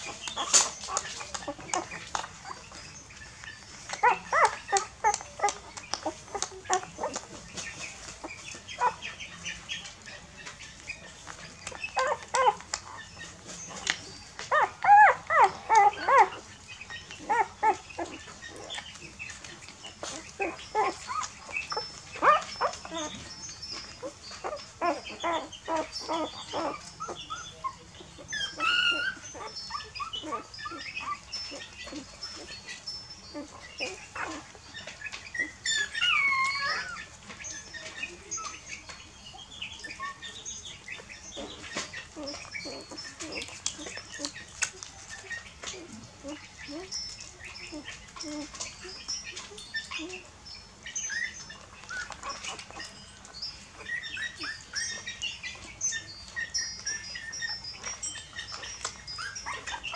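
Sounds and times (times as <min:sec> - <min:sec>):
puppies whimpering and squeaking: 0:00.0 - 0:59.9.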